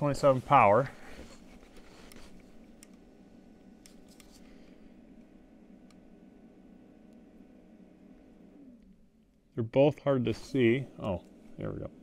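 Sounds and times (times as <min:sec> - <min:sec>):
faint background hum: 0:00.0 - 0:12.0
soft clicks: 0:02.0 - 0:03.0, 0:03.8 - 0:04.5.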